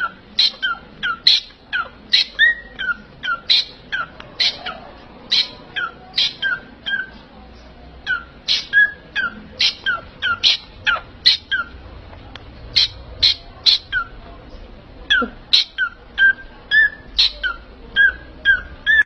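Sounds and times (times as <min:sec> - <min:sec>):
parrots chirping: 0:00.0 - 0:07.3, 0:08.0 - 0:11.9, 0:12.5 - 0:14.3, 0:15.0 - 0:19.0.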